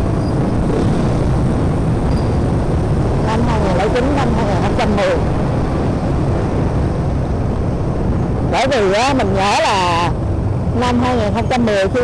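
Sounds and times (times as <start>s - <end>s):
motorbike and car traffic: 0.0s - 12.0s
motorbike engine rumble: 0.0s - 12.0s.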